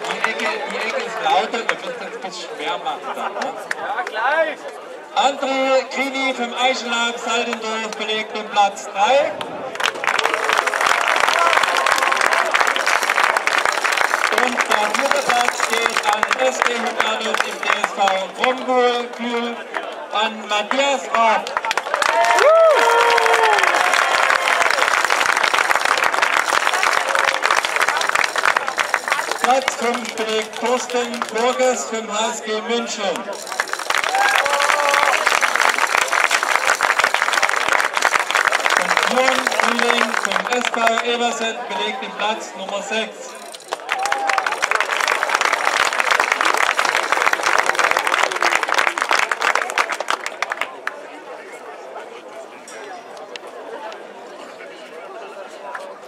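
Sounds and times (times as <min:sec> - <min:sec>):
crowd applauding: 0:00.0 - 0:02.2, 0:09.6 - 0:31.9, 0:33.1 - 0:41.8, 0:43.4 - 0:51.2.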